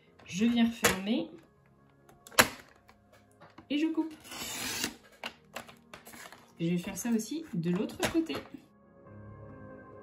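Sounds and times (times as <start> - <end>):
paper trimmer slicing cardstock: 4.2 - 5.0.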